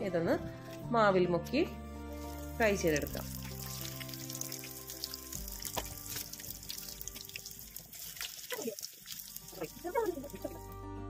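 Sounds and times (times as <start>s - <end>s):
soft background music: 0.0s - 11.0s
battered peppers deep-frying in oil: 2.1s - 10.7s.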